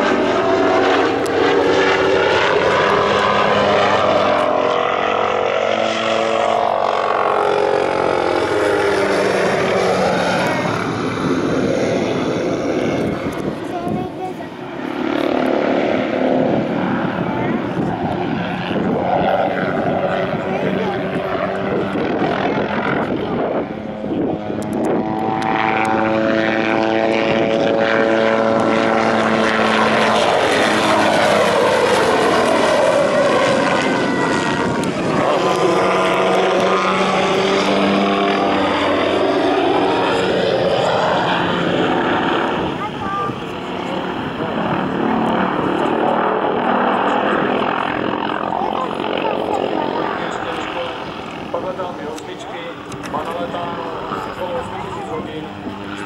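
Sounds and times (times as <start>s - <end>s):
helicopter engine and rotors: 0.0s - 56.0s.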